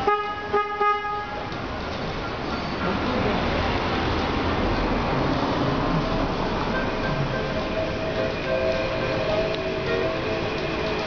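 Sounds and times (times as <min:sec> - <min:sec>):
car horn honking: 0:00.0 - 0:01.5.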